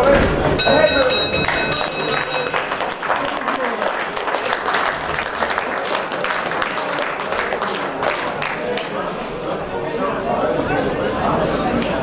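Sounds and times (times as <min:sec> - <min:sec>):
audience applauding and calling out: 0:00.0 - 0:09.2
boxing ring bell ringing: 0:00.6 - 0:02.8.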